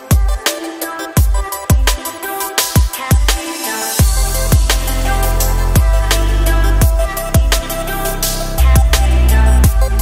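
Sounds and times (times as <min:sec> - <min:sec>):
electronic music with kick drum: 0:00.0 - 0:10.0
deep sustained bass line: 0:04.0 - 0:10.0.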